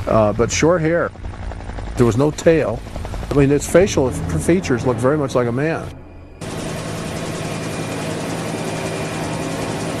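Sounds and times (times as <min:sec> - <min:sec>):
helicopter engine and rotor: 0:00.0 - 0:10.0.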